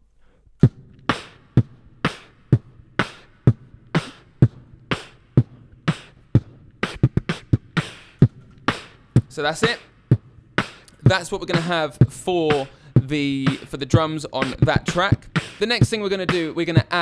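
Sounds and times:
beatboxed drum beat: 0.6 - 17.0.

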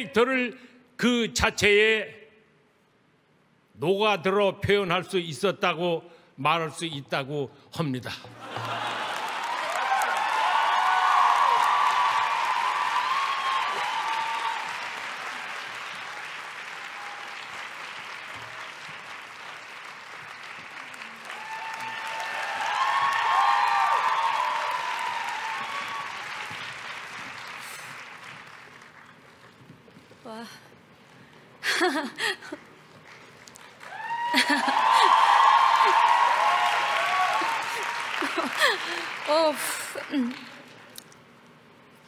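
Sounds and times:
cheering voices: 8.4 - 15.4, 21.0 - 26.7, 33.8 - 39.5
audience applause: 8.4 - 29.6, 32.2 - 41.0.

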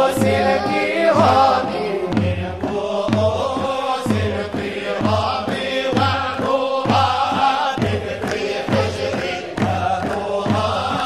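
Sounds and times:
group chanting devotional song: 0.0 - 11.0
low drum beat: 0.0 - 11.0.

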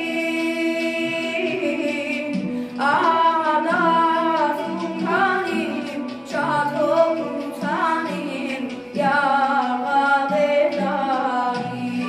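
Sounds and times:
boy singing into a microphone: 0.0 - 12.0.

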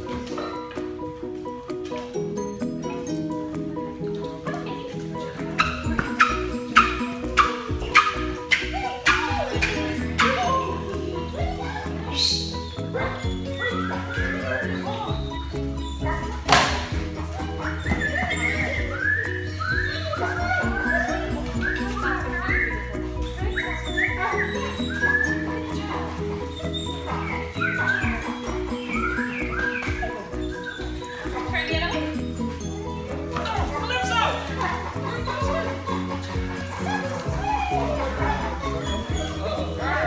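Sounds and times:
background music: 0.0 - 40.0
dogs whining and yelping: 2.4 - 40.0.

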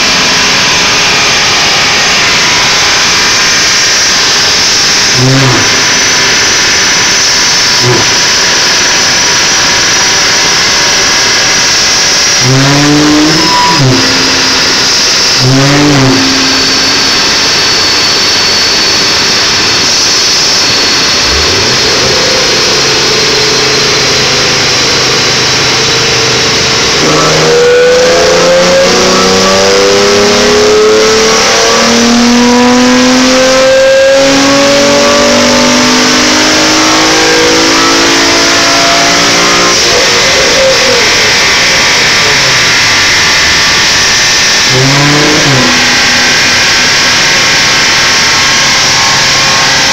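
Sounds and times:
car engine revving: 0.0 - 49.9
loud steady rush: 0.0 - 49.9.

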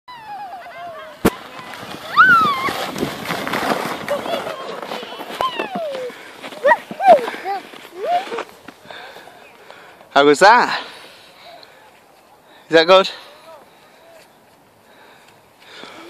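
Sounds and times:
plastic sled sliding on snow: 0.2 - 9.5
people squealing: 2.0 - 2.9.

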